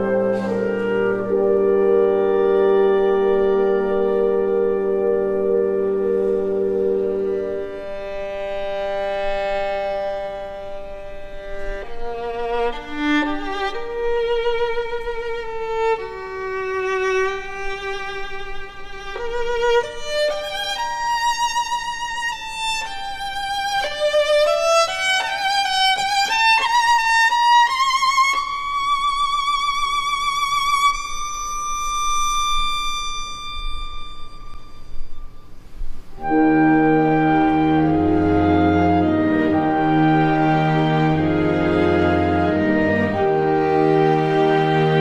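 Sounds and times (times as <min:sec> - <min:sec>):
violin with orchestral accompaniment: 0:00.0 - 0:35.2, 0:35.8 - 0:45.0.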